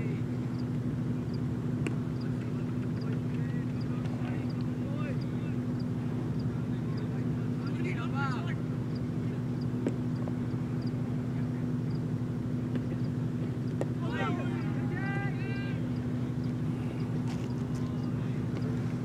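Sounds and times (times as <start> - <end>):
distant players shouting: 0.0 - 19.0
low mechanical drone: 0.0 - 19.0.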